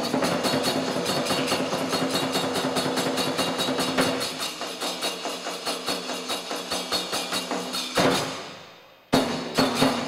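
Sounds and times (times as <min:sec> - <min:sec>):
taiko drum beat: 0:00.0 - 0:08.3
small hand cymbals: 0:00.0 - 0:10.0.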